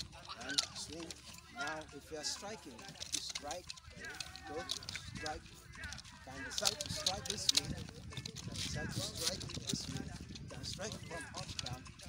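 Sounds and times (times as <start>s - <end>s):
man's low indistinct voice: 0.0s - 12.0s.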